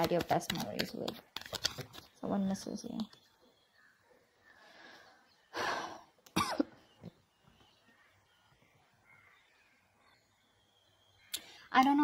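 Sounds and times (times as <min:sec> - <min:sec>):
person coughing: 0:06.4 - 0:06.8.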